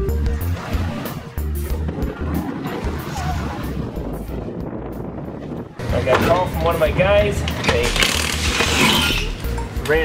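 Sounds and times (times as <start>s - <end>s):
impact wrench whirring: 7.9s - 9.4s.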